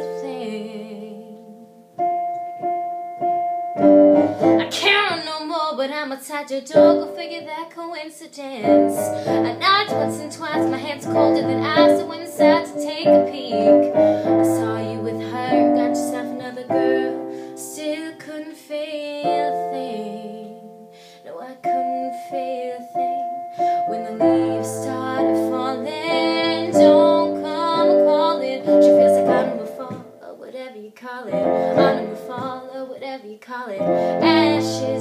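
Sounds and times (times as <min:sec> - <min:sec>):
woman singing: 0:00.0 - 0:01.9, 0:04.4 - 0:35.0
piano chords: 0:00.0 - 0:05.4, 0:06.7 - 0:07.5, 0:08.6 - 0:30.3, 0:31.3 - 0:32.8, 0:33.7 - 0:35.0.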